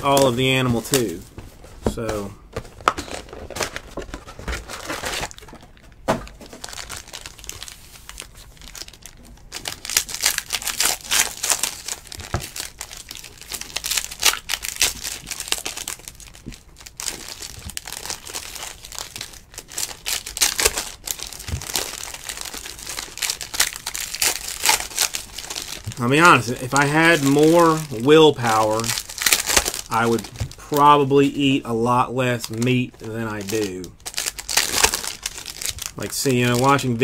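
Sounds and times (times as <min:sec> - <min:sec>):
foil wrappers tearing and crinkling: 0:02.8 - 0:37.0.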